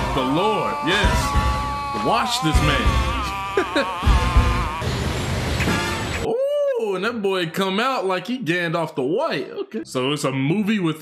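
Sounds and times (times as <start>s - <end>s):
soundtrack music: 0.0s - 6.3s.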